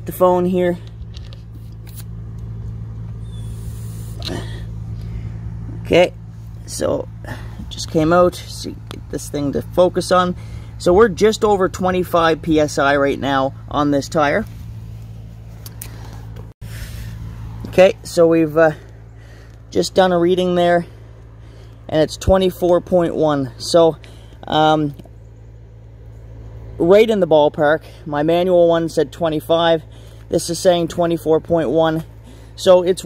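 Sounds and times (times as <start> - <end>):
low hum like idling engine: 0.0 - 33.0
faint hiss of air: 3.2 - 5.4.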